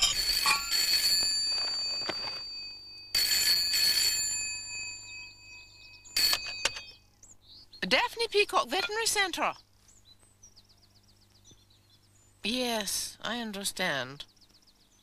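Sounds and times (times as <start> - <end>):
handset picked up: 0.0 - 2.5
desk telephone ringing: 0.0 - 7.0.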